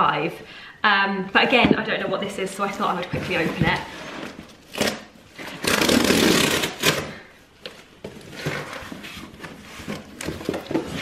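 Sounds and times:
cardboard tearing: 4.7s - 7.1s
loud ripping: 4.7s - 7.1s.

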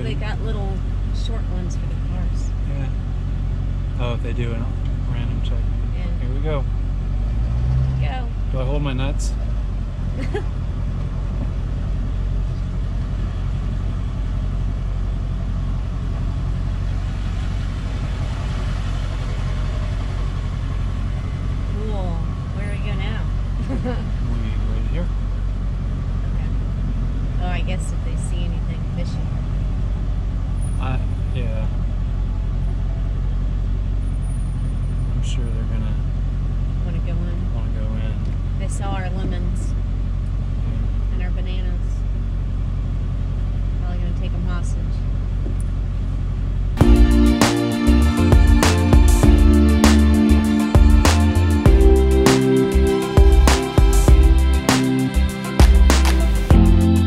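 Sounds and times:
truck engine rumbling: 0.0s - 57.0s
faint voice: 4.0s - 5.6s, 23.7s - 25.1s, 30.8s - 31.7s.

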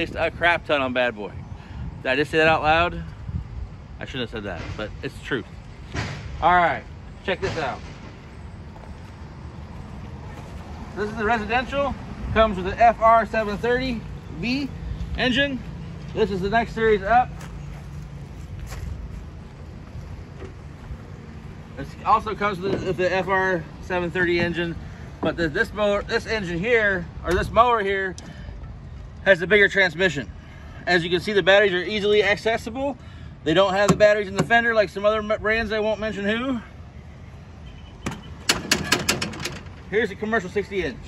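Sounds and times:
low outdoor rumble: 0.0s - 41.0s
sharp clicks and light knocks: 38.0s - 39.9s.

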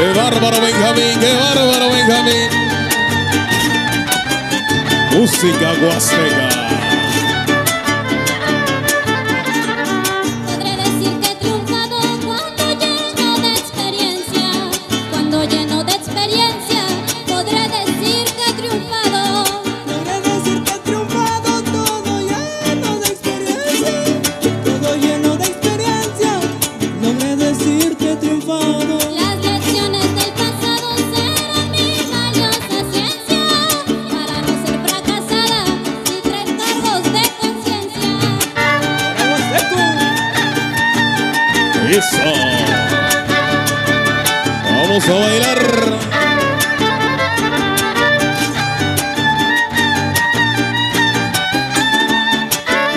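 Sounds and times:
violin melody: 0.0s - 20.3s, 29.6s - 52.9s
strummed guitars: 0.0s - 52.9s.

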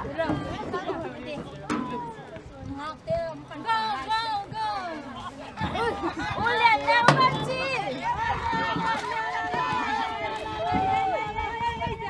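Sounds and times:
people calling and shouting: 0.0s - 12.0s.

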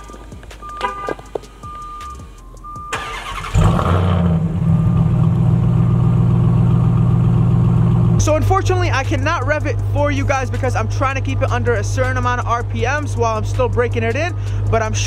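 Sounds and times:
short electronic beeps: 0.0s - 3.4s
engine idling deeply: 1.2s - 15.0s
engine cranking and starting: 2.8s - 5.4s.

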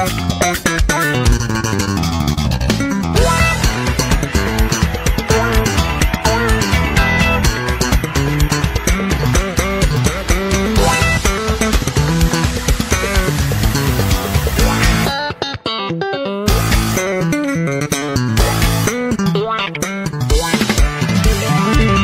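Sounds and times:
busy background music: 0.0s - 22.0s.

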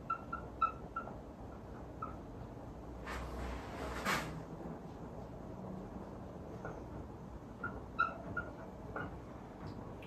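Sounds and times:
marker squeaking on whiteboard: 0.0s - 1.2s, 7.5s - 9.2s.

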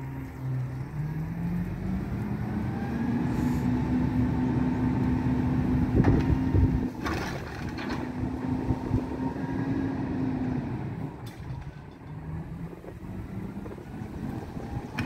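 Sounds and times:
garbage truck diesel engine: 0.0s - 15.0s.

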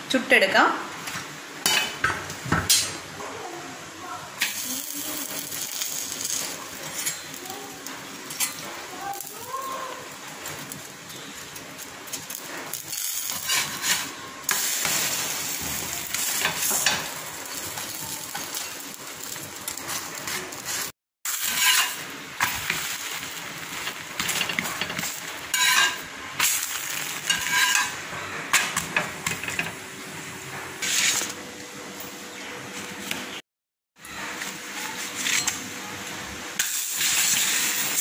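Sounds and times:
dough sizzling on hot iron: 1.0s - 31.4s, 34.1s - 38.0s
metal spatula clinking and scraping: 12.7s - 14.6s, 21.4s - 22.8s, 24.2s - 28.0s.

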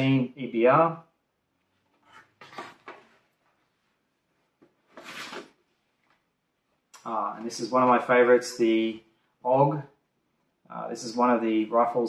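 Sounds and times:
cardboard scraping: 1.9s - 3.2s, 4.9s - 5.6s.

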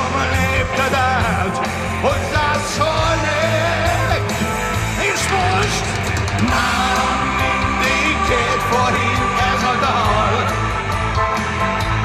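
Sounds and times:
man singing: 0.0s - 10.9s
live rock band playing: 0.0s - 12.0s.

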